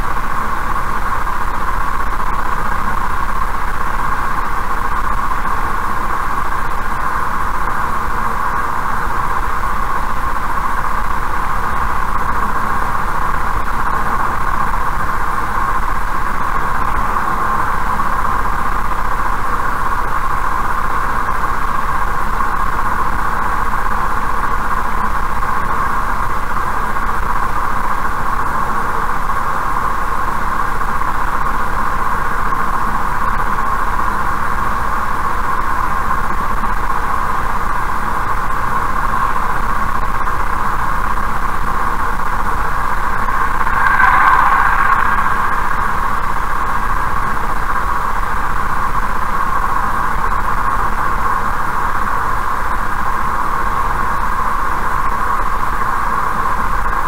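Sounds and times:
car road and tyre noise: 41.1s - 49.5s.

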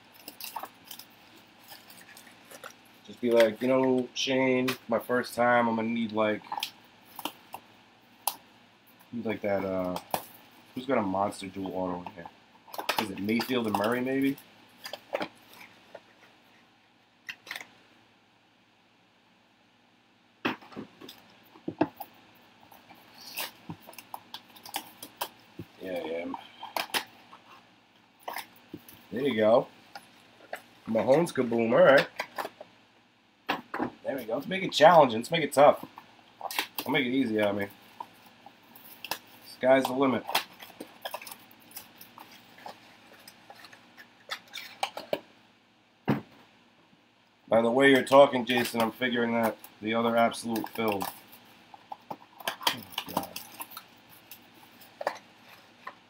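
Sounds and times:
plastic crinkles: 0.0s - 4.2s, 9.0s - 16.4s, 34.1s - 45.3s, 48.0s - 56.0s.

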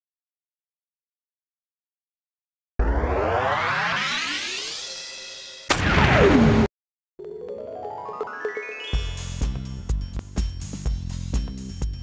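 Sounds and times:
hit with falling tone: 2.8s - 6.7s
synthesized rising sweep: 2.8s - 6.7s.

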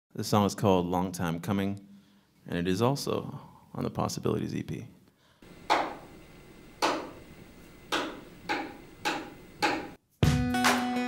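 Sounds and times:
sharp percussive count-in clicks: 7.9s - 10.0s.

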